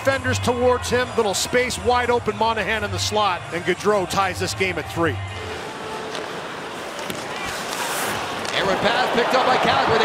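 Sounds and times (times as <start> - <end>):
crowd noise: 3.4 - 10.0
faint clicks of sticks and puck: 6.0 - 9.0.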